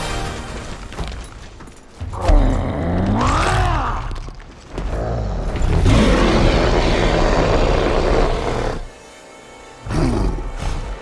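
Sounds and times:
rumbling film score: 0.0s - 11.0s
creature roar: 2.2s - 4.2s, 5.0s - 8.9s
creature growl: 4.8s - 8.9s.

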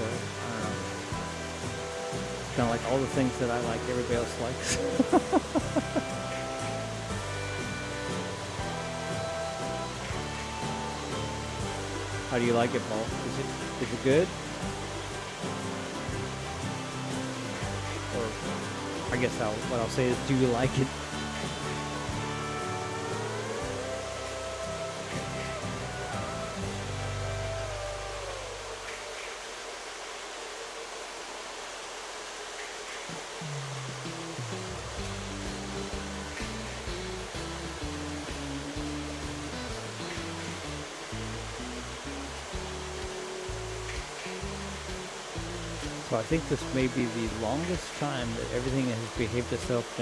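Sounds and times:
background music: 0.0s - 30.0s, 33.2s - 50.0s.

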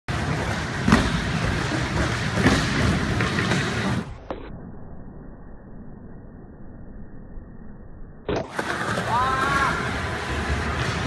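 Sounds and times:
skateboard wheels rolling on wood: 0.1s - 4.2s, 8.3s - 11.0s.

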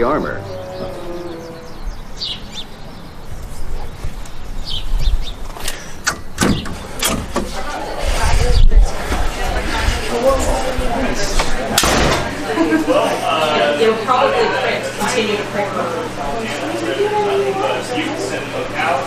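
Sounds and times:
indistinct voices talking: 0.0s - 3.2s, 6.8s - 19.0s.

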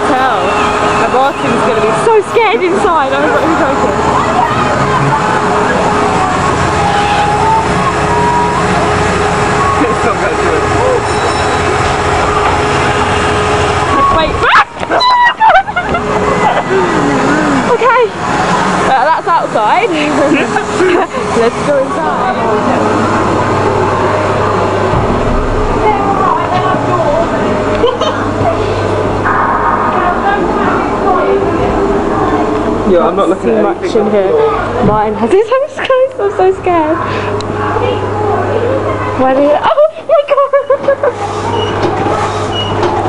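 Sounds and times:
loud low rumble: 0.0s - 35.5s
amusement ride machinery humming: 0.0s - 43.0s.

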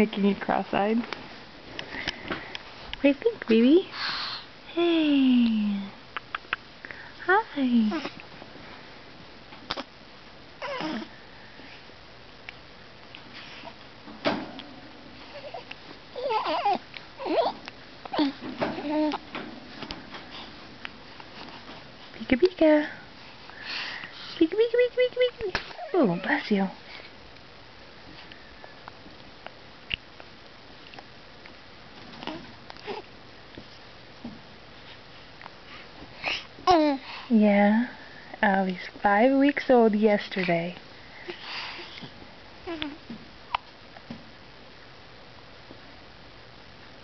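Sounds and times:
baby mouth clicks: 6.2s - 6.6s
breathy sniff: 23.3s - 24.4s.

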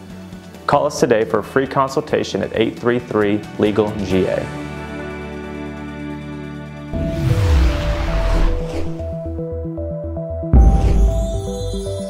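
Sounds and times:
whoosh: 6.9s - 9.3s.

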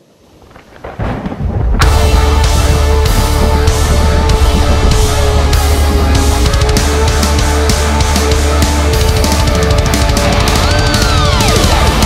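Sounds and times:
deep thunder-like rumble: 0.6s - 7.4s
power metal band with guitars: 1.8s - 12.0s.

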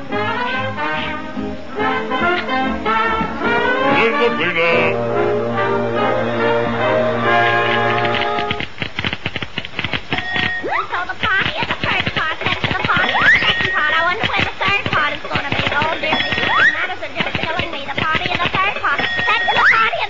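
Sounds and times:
squeaky cartoon chatter: 10.6s - 20.0s.

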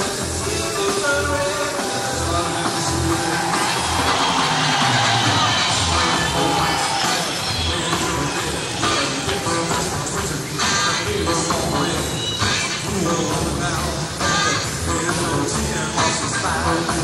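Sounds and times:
live rock band playing: 0.0s - 17.0s.

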